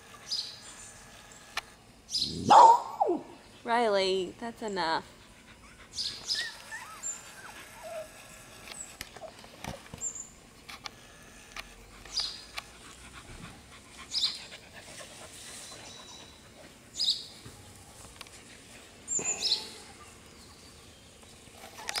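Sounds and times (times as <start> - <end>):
puppy whimpering and squeaking: 5.6 - 8.4.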